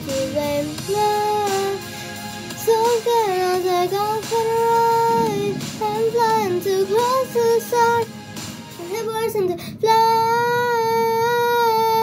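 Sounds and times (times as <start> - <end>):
girl singing sliding notes: 0.0 - 12.0.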